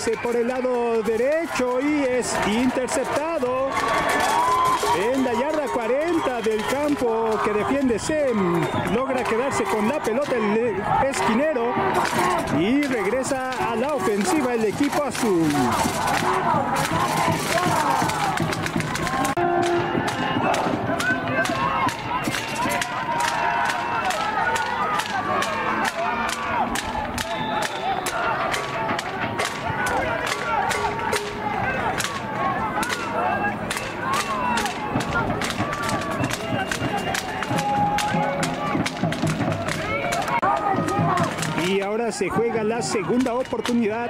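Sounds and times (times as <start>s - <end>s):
crowd shouting and cheering: 0.0s - 44.0s
sharp clapping: 12.0s - 33.1s, 33.7s - 41.9s.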